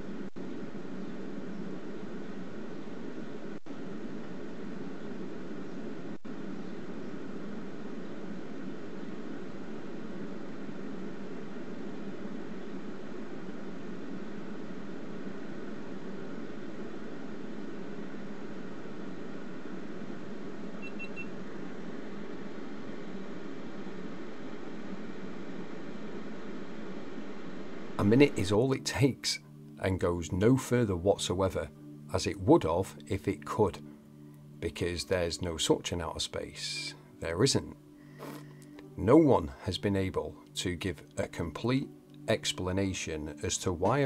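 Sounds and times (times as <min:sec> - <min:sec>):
steady rushing noise: 0:00.0 - 0:29.4
faint short beep: 0:20.8 - 0:21.4.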